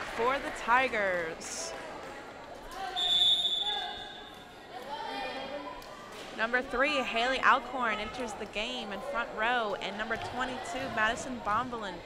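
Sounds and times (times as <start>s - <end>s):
players' voices in a gym: 0.0s - 12.0s
referee's whistle blowing: 3.0s - 4.3s.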